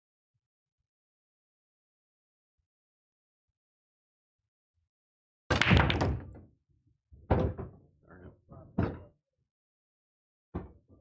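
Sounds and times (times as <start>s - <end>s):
pool balls knocking: 5.5s - 6.4s.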